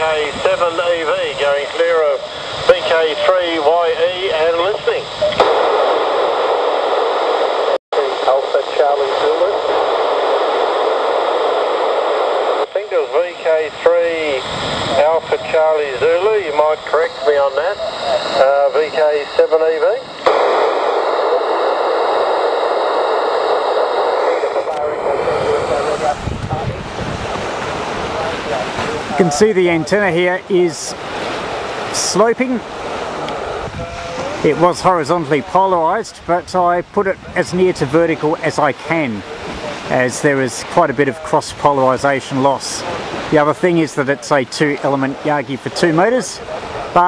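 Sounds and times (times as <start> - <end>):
radio receiver hiss: 0.0 - 36.5
surf: 0.0 - 47.0
wind: 0.0 - 47.0.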